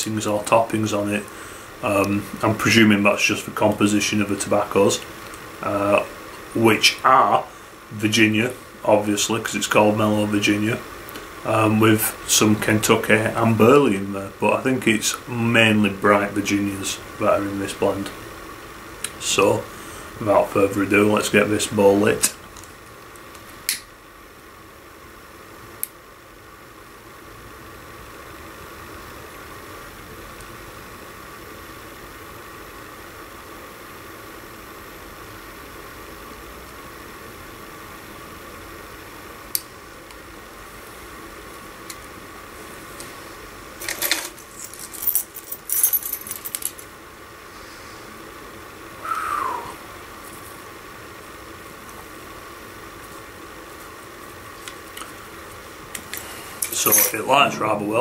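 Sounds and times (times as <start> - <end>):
steady background hiss: 0.0 - 58.0.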